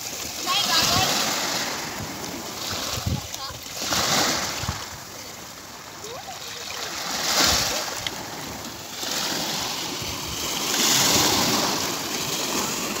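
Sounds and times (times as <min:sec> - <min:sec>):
waves washing over pebbles: 0:00.0 - 0:13.0.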